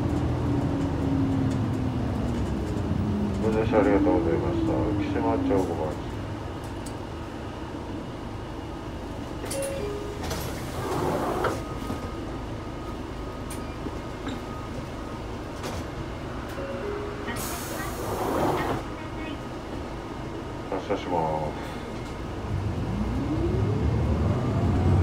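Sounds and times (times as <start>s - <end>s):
bus engine and road rumble: 0.0s - 25.0s.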